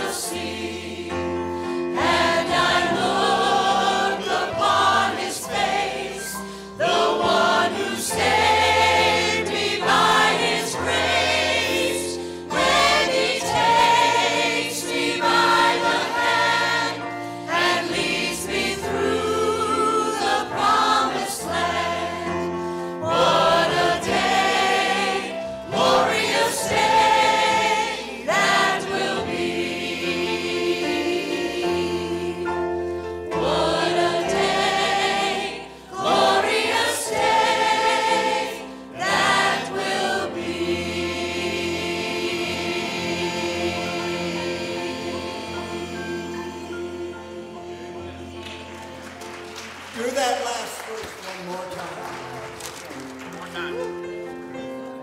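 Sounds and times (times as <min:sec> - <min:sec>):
soloists singing into microphones: 0:00.0 - 0:49.0
choir singing gospel: 0:00.0 - 0:50.1.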